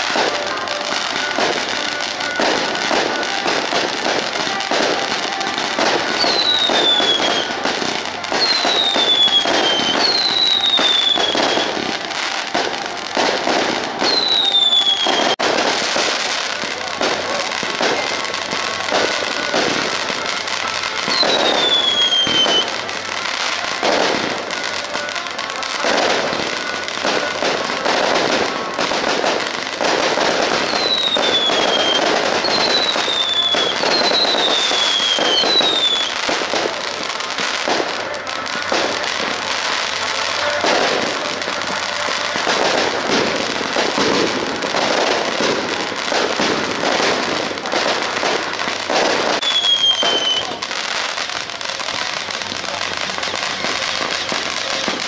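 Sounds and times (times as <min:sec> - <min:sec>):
falling firework whistles: 0:00.0 - 0:55.0
fireworks crackling and banging: 0:00.0 - 0:55.0.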